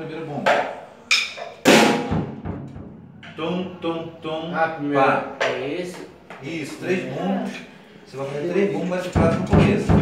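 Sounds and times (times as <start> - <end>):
bass drum hit: 1.7 - 3.2.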